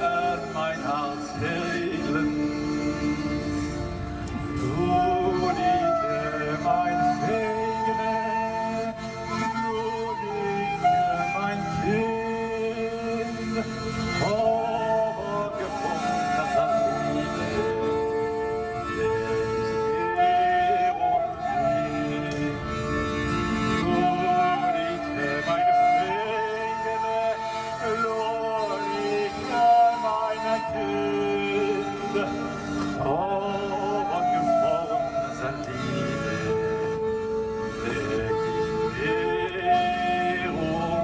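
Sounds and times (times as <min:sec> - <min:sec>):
accordion chords: 0:00.0 - 0:41.0
saxophone long notes: 0:00.0 - 0:41.0.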